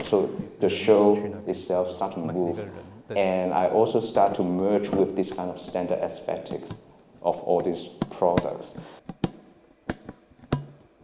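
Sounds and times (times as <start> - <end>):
plastic containers knocking: 7.5 - 11.0.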